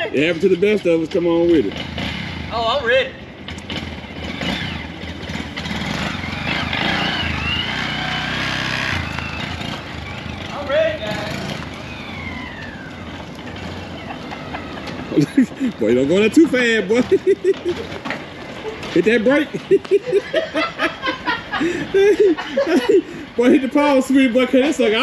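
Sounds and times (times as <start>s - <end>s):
small motorcycle engine running: 0.0s - 20.2s.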